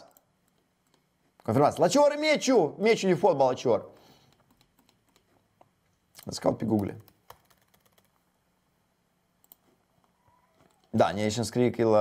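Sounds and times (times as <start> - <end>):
keyboard and mouse clicks: 0.0 - 1.9, 4.3 - 8.2, 9.4 - 11.0.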